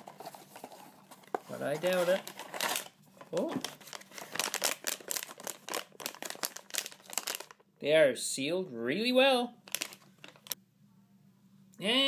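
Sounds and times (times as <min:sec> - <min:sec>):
foil bag crinkling: 0:00.0 - 0:07.7, 0:09.6 - 0:10.6.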